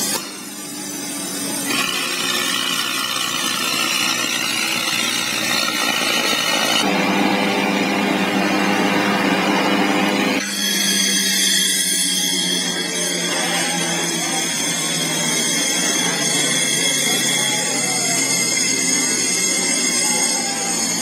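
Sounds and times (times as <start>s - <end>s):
engine and generator whining: 0.0s - 21.0s.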